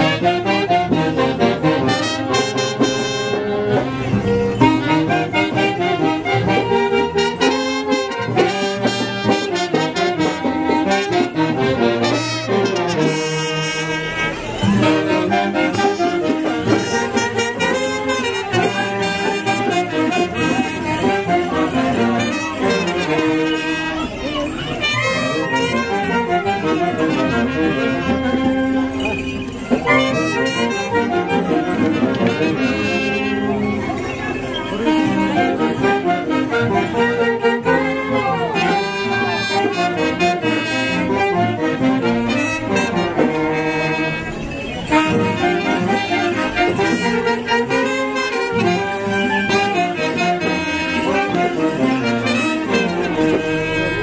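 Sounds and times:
band accompaniment: 0:00.0 - 0:54.0
saxophones and trumpet melody: 0:00.0 - 0:54.0.

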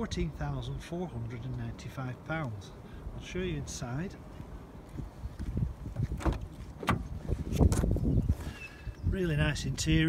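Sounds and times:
car door handle and latch clicks: 0:06.0 - 0:07.9.

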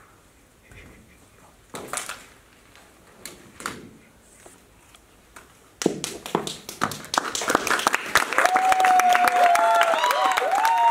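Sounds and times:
audience clapping: 0:05.8 - 0:10.9
whoops and cheering voices: 0:08.3 - 0:10.9.

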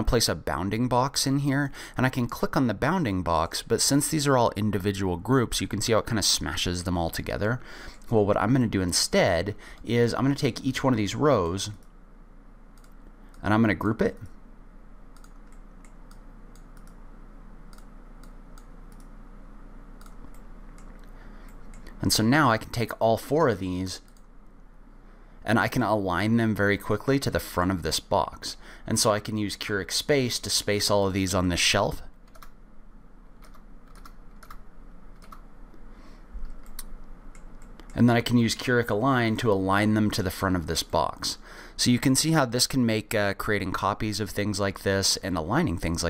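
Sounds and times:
steady low hum: 0:00.0 - 0:46.0
computer mouse clicks: 0:12.8 - 0:13.4, 0:15.2 - 0:17.0, 0:17.7 - 0:19.1, 0:20.0 - 0:22.0, 0:32.3 - 0:32.6, 0:33.4 - 0:35.8, 0:36.4 - 0:38.0.

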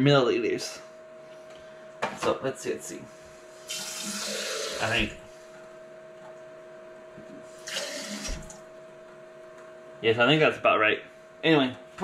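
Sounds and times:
faucet water filling glass jar: 0:03.7 - 0:04.9, 0:07.6 - 0:08.5.

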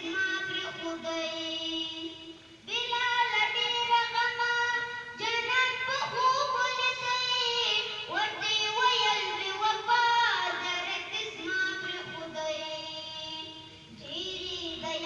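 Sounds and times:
child singing into a microphone: 0:00.0 - 0:15.0.

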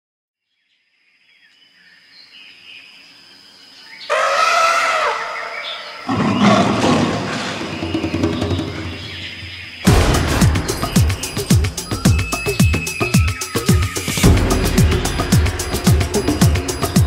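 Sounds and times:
animal-like roar: 0:04.1 - 0:07.8
loud music: 0:09.9 - 0:17.0.

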